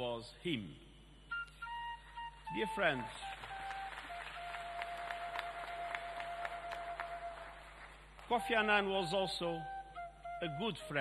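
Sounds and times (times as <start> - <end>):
wind instrument holding long note: 1.4 - 11.0.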